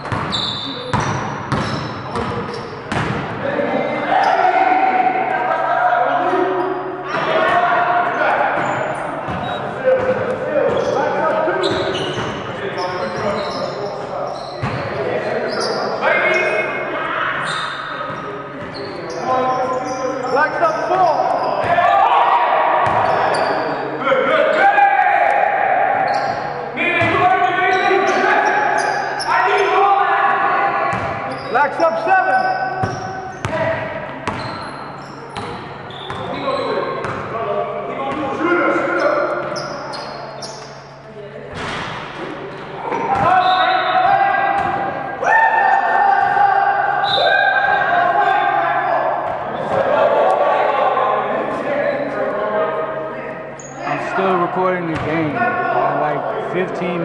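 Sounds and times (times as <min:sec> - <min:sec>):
basketball bouncing on wood floor: 0:00.9 - 0:03.3
players calling out: 0:53.4 - 0:57.0.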